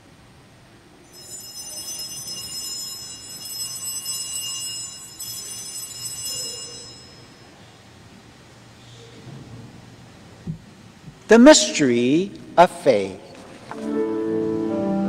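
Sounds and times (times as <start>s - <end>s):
small bells shaken: 1.1s - 7.6s.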